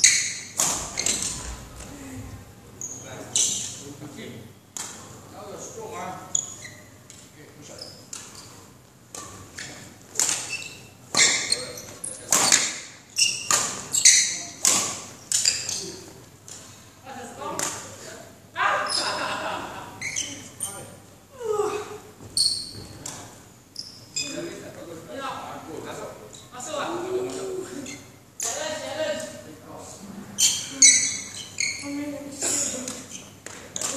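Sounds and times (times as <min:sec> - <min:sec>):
shoes squeaking on hall floor: 0:00.0 - 0:16.7, 0:19.9 - 0:24.8, 0:27.1 - 0:28.2, 0:30.3 - 0:33.9.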